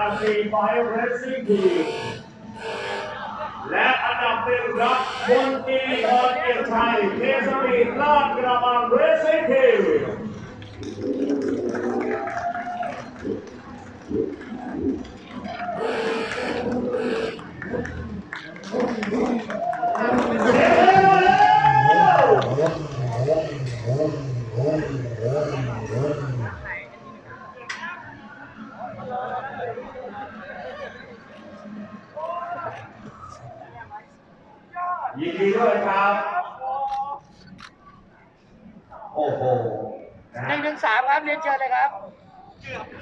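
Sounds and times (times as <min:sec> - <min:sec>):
man talking: 0:00.0 - 0:02.2, 0:03.6 - 0:10.2
people talking: 0:00.0 - 0:34.2, 0:34.8 - 0:37.6, 0:38.9 - 0:43.0.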